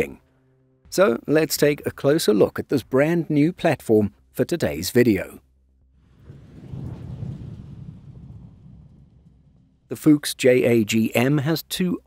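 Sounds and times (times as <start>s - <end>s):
low rumbling sound effect: 5.8s - 10.0s.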